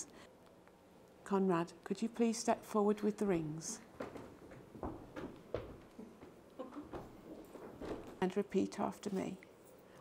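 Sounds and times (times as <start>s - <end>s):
soft footsteps: 3.4s - 8.3s.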